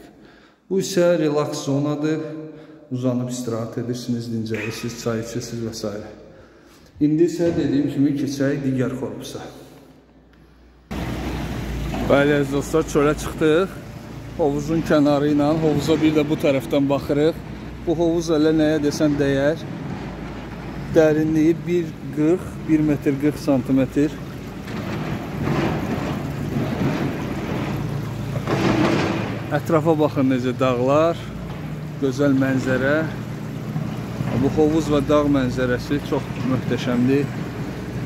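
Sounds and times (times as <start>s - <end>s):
outdoor background rumble and hiss: 10.8s - 38.0s
water jets splashing into pool: 10.9s - 38.0s.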